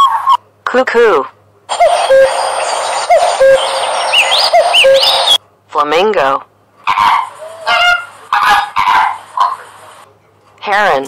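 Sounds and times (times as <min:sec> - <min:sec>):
flamingos honking: 0:01.7 - 0:05.4, 0:06.9 - 0:10.0.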